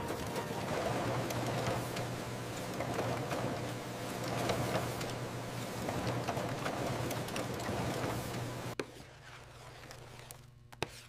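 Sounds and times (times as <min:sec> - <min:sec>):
printing press running: 0:00.0 - 0:08.8.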